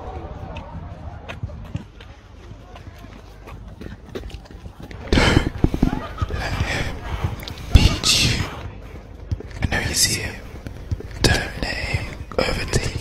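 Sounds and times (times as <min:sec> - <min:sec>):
footsteps on paved path: 0:00.0 - 0:13.0
heavy panting breaths: 0:05.0 - 0:08.7.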